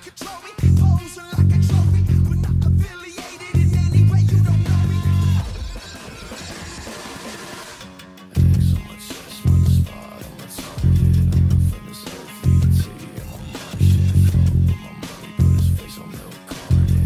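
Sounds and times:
rock band recording: 0:00.0 - 0:17.0
electric bass guitar riff: 0:00.6 - 0:05.6, 0:08.2 - 0:17.0.

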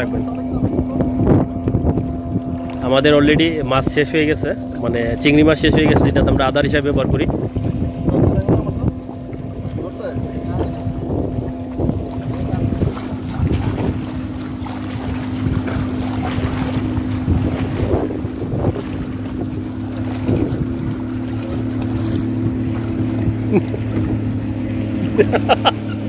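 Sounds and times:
wind on microphone: 0:00.0 - 0:25.9
motorboat engine droning: 0:00.0 - 0:26.0.

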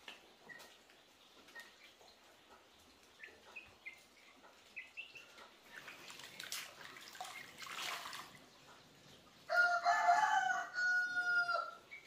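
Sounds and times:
rooster crowing: 0:09.5 - 0:11.8.

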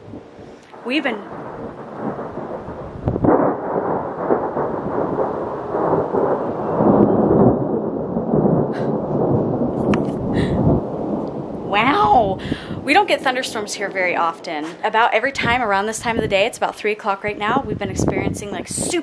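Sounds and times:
thunder rumbling: 0:00.0 - 0:19.0.

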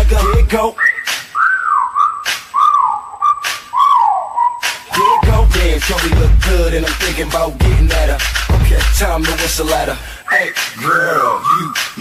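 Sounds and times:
whistled melody: 0:00.0 - 0:06.0, 0:10.1 - 0:12.0.

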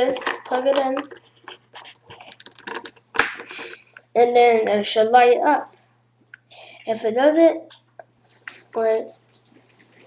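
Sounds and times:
plastic mouse clicks and rustles: 0:00.2 - 0:03.8.

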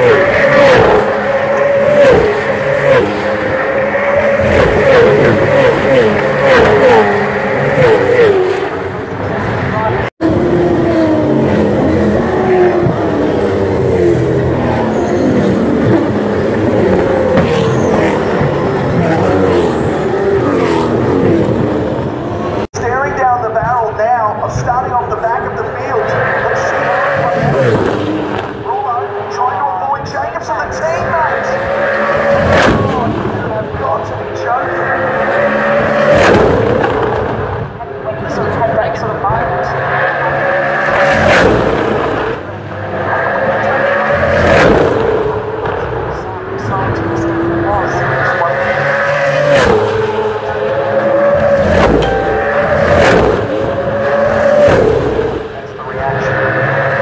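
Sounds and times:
race cars passing at speed: 0:00.0 - 0:22.7, 0:24.8 - 0:57.0.

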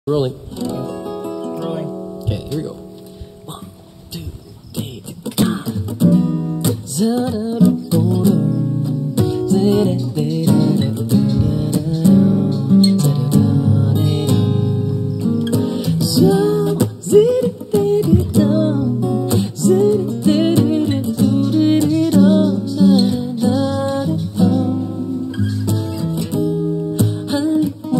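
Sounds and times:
acoustic guitars strumming: 0:00.1 - 0:27.9
man vocalising: 0:03.4 - 0:06.1.

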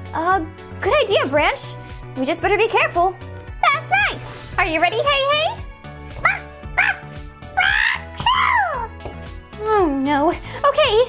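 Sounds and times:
background music: 0:00.0 - 0:11.0
person making squawking calls: 0:06.2 - 0:08.8.

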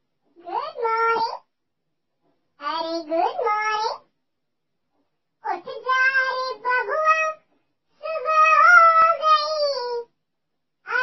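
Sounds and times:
high childlike voice singing: 0:05.4 - 0:10.1.

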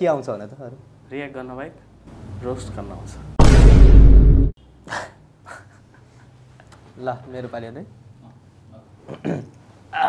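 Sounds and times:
low hum: 0:03.4 - 0:04.6.

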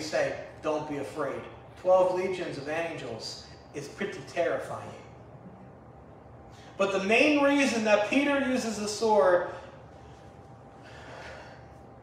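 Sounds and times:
thin steady hum: 0:00.0 - 0:12.0
man speaking: 0:06.8 - 0:09.6
man breathing in: 0:09.6 - 0:11.8.

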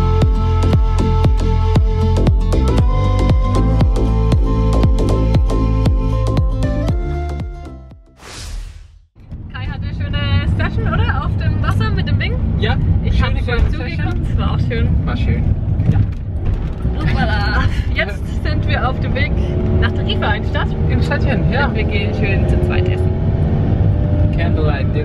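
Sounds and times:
van engine and road noise: 0:00.0 - 0:07.7, 0:09.2 - 0:25.0
people talking: 0:09.5 - 0:15.4, 0:17.0 - 0:23.1, 0:24.3 - 0:25.0.

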